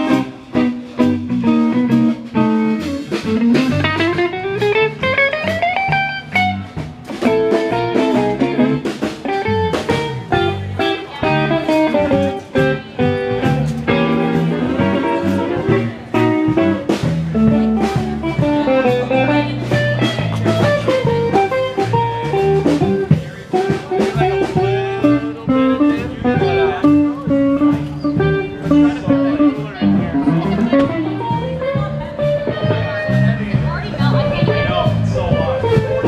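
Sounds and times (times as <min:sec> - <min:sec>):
bass line: 0:00.0 - 0:36.0
instrumental blues guitar music: 0:00.0 - 0:36.0.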